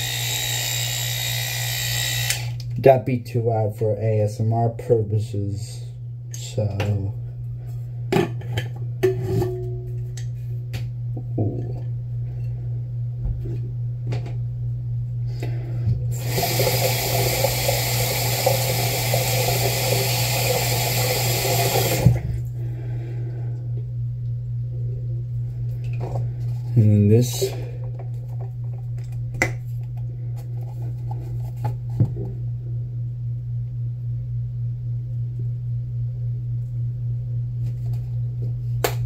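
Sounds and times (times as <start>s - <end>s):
steady low hum: 0.0s - 39.0s
sink tap running: 16.1s - 22.4s.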